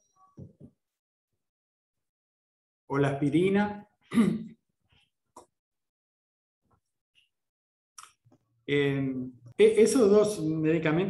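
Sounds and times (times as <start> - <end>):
man clearing throat: 4.1 - 4.6.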